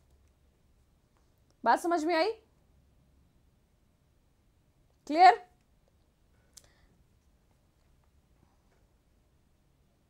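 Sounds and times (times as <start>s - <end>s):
faint click: 5.6s - 6.8s.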